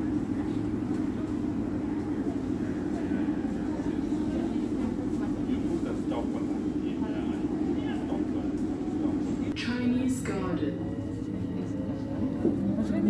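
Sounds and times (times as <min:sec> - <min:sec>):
faint voices: 0:00.0 - 0:13.0
train rumbling inside carriage: 0:00.0 - 0:13.0.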